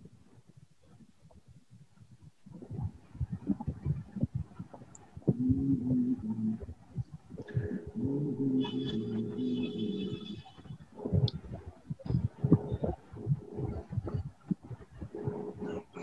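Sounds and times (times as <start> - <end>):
low thumps and crackles: 0.0 - 16.0
steady hum: 0.0 - 16.0
garbled video call voice murmur: 2.5 - 16.0.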